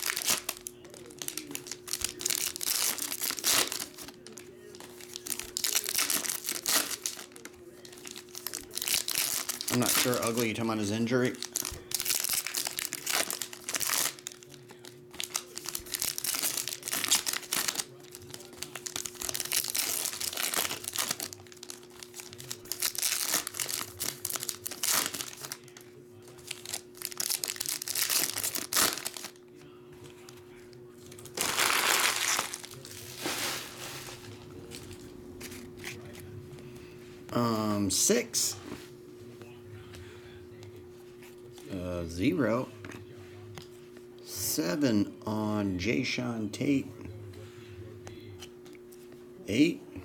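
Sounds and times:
foil packs tearing and crinkling: 0:00.0 - 0:25.8, 0:26.4 - 0:29.4, 0:31.1 - 0:34.3.

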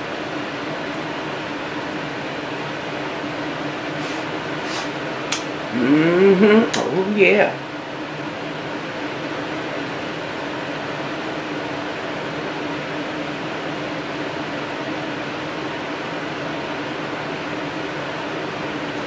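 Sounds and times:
mechanical hum and hiss: 0:00.0 - 0:19.0.

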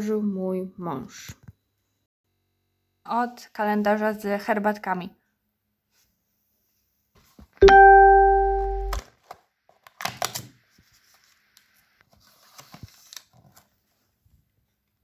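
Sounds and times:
plucked string note: 0:07.6 - 0:09.0
cardboard and paper rustling: 0:12.0 - 0:14.6.

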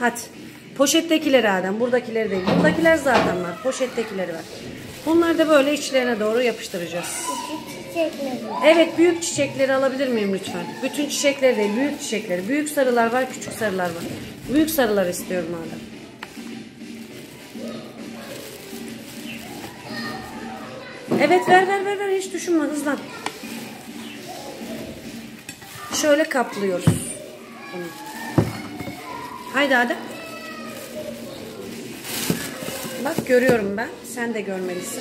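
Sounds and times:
children chattering: 0:00.0 - 0:35.0
crinkly rustling: 0:00.0 - 0:35.0.

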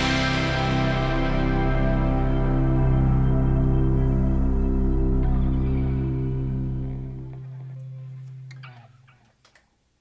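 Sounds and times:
band holding low chord: 0:00.0 - 0:08.9.

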